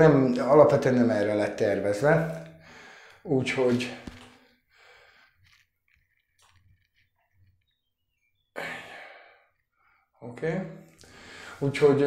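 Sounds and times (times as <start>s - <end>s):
man sighing: 8.6s - 9.4s.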